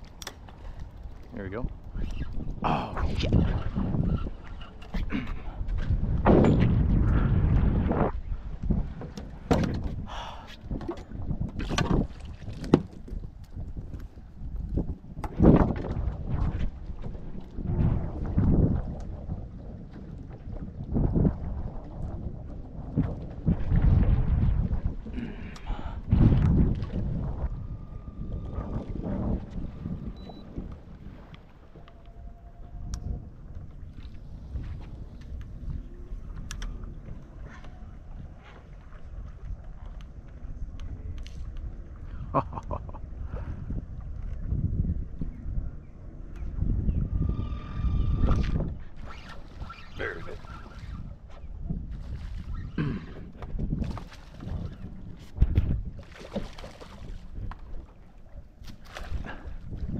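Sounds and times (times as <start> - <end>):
wind buffeting microphone: 0.0 - 59.9
knocks and bumps on boat deck: 9.0 - 10.0.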